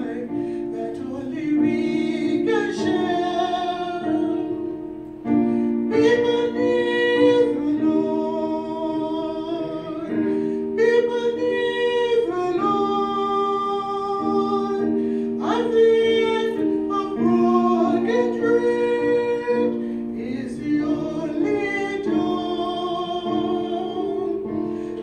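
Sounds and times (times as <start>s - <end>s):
instrumental accompaniment: 0.0s - 25.0s.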